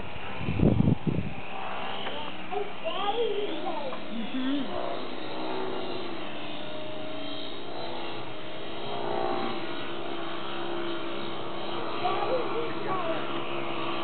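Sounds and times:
model plane motor whine: 0.0 - 14.0.

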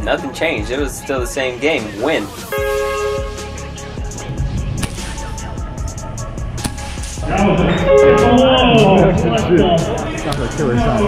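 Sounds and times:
low bass line: 2.5 - 11.0.

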